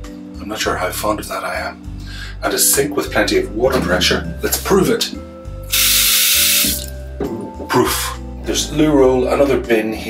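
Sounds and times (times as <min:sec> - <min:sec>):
water gushing from tap into sink: 0:05.7 - 0:06.9.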